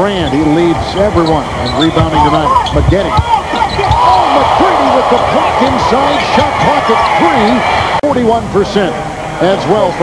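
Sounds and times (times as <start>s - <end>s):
sneakers squeaking: 0.1s - 4.4s
basketball dribbling: 1.2s - 4.1s.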